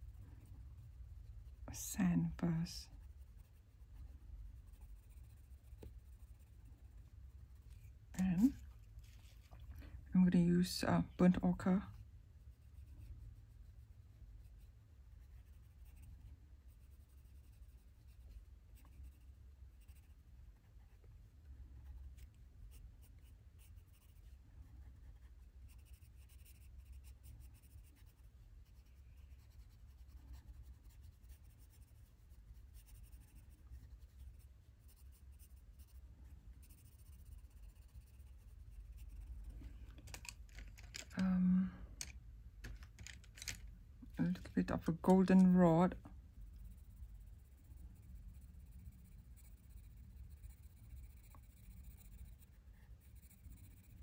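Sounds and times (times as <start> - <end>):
pencil scratching on paper: 0.0 - 9.6, 12.4 - 39.5, 44.1 - 54.0
low steady hum: 0.0 - 54.0.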